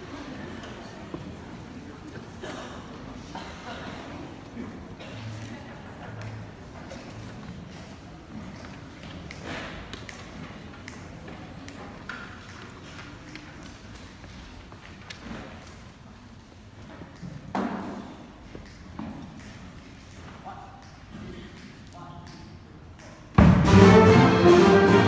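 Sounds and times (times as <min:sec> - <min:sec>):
murmur of voices: 0:00.0 - 0:25.0.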